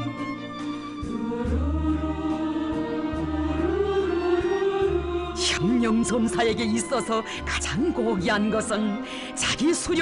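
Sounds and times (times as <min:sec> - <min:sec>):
low accompaniment: 0:00.0 - 0:06.9
choir singing held notes: 0:01.1 - 0:06.4.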